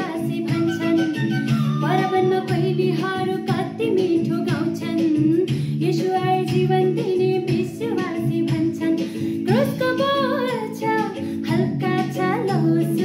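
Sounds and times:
instrumental backing chords: 0.0s - 13.0s
woman singing: 0.0s - 13.0s.

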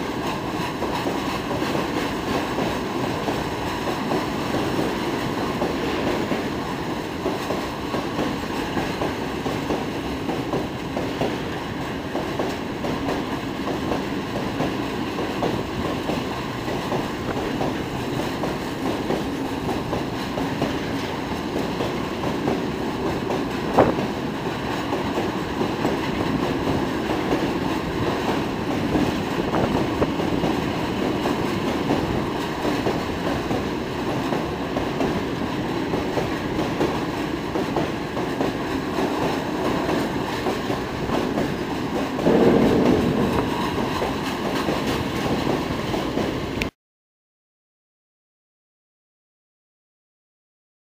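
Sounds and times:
train wheels rumbling on rails: 0.0s - 46.7s
sharp knock: 42.2s - 44.8s.

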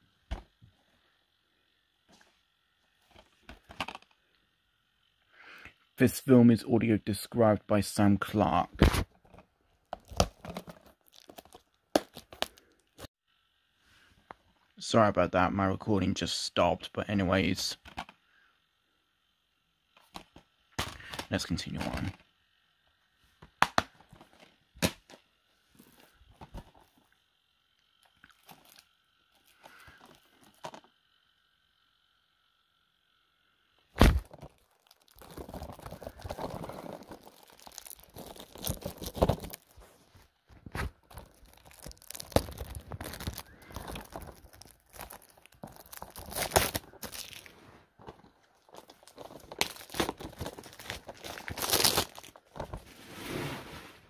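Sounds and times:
rustling and crinkling: 8.8s - 13.1s, 23.9s - 27.3s, 28.0s - 31.0s, 34.0s - 54.0s
plastic cases clattering: 34.2s - 39.7s, 41.0s - 52.9s.

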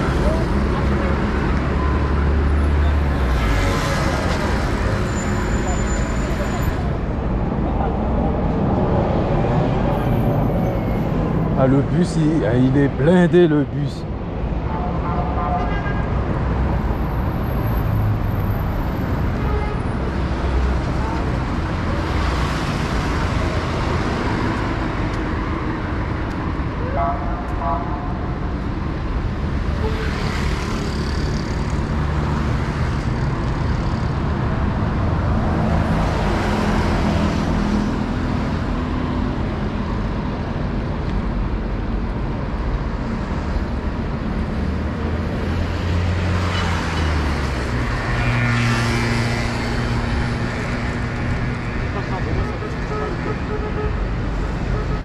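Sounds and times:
road traffic rumble: 0.0s - 55.0s.

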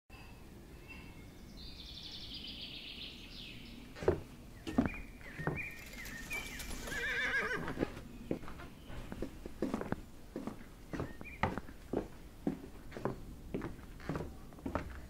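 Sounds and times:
horse whinnying: 6.6s - 7.8s.

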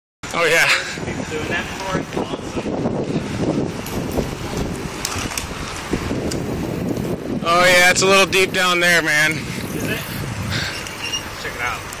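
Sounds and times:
wind buffeting microphone: 0.3s - 12.0s
bike tyres rumbling on pavement: 0.4s - 12.0s.

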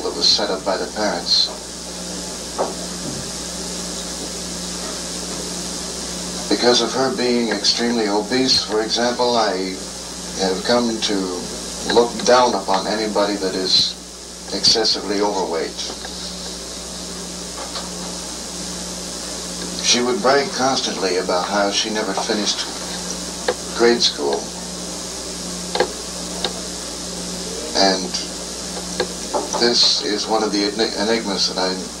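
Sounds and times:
low electrical hum: 0.0s - 32.0s
steady hiss: 0.0s - 32.0s.

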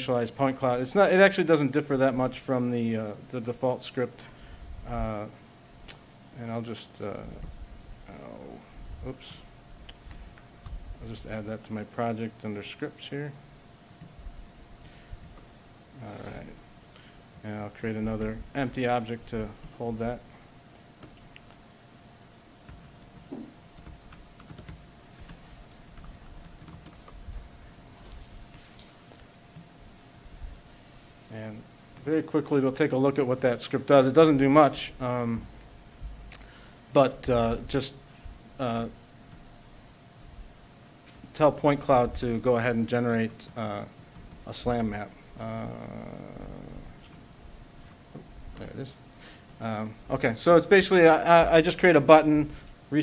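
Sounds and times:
faint steady hum: 0.0s - 53.0s
man saying uh: 16.0s - 16.6s, 44.5s - 47.0s
laptop keyboard typing: 22.7s - 27.2s, 43.2s - 44.9s.

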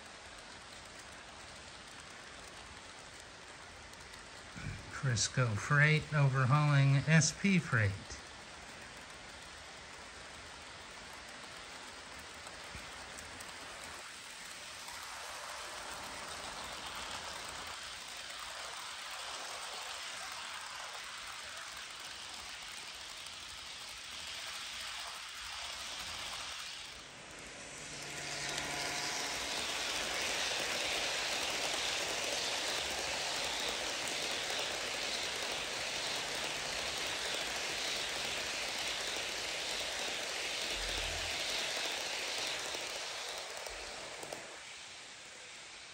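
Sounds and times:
model train wheels on rails: 0.0s - 45.9s.

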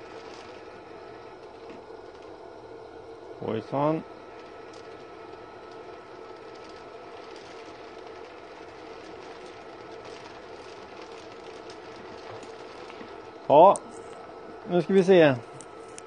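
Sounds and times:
pellet burner mechanical hum: 0.0s - 16.0s.

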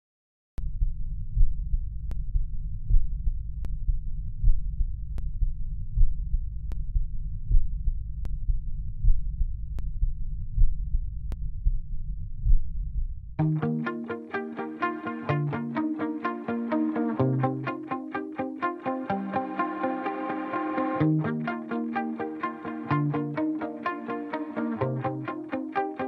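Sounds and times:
heartbeat low pulsing: 0.6s - 13.4s.

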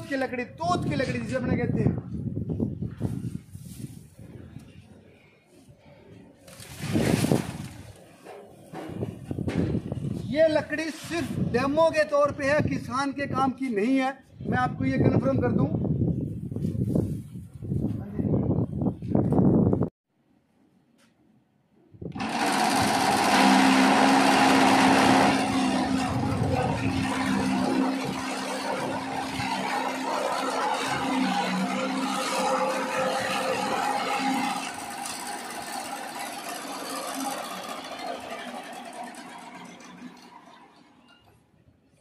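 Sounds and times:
machine hum: 22.1s - 41.3s.

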